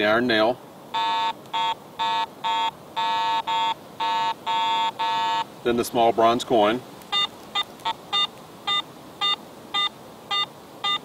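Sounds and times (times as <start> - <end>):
metal detector beeps: 1.0 - 5.5, 7.1 - 11.0.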